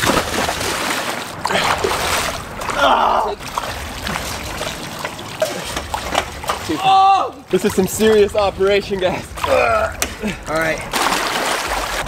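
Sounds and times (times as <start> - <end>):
pool water splashing: 0.0 - 12.0
person shouting: 6.7 - 7.4.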